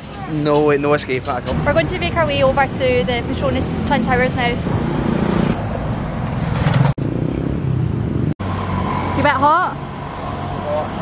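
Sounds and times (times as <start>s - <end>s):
car engines and tyre noise: 0.0s - 11.0s
motorcycle on the road: 1.5s - 11.0s.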